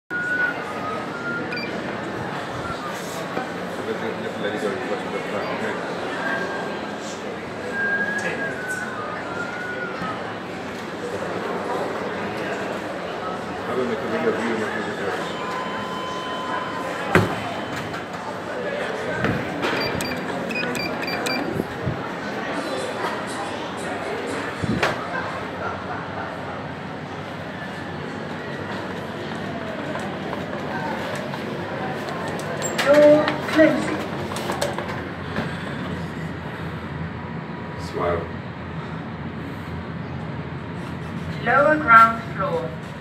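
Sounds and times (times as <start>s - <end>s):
hubbub of voices: 0.1s - 43.0s
short high electronic beeps: 19.7s - 21.5s.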